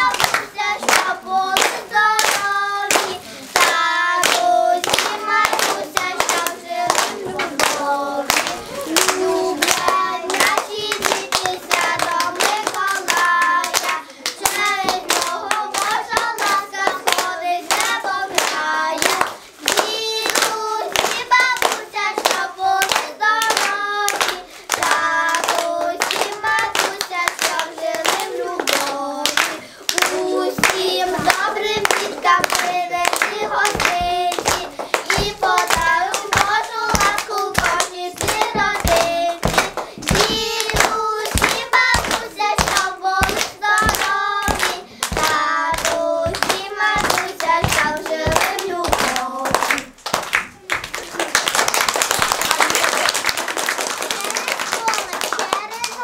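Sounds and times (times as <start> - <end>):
girls singing together: 0.0 - 50.1
hands clapping in rhythm: 0.0 - 56.0.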